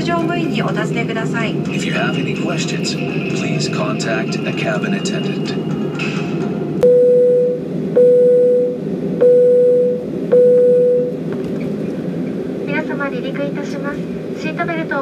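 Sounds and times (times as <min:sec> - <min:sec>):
airliner cabin chime: 0:03.2 - 0:06.1, 0:06.8 - 0:11.2.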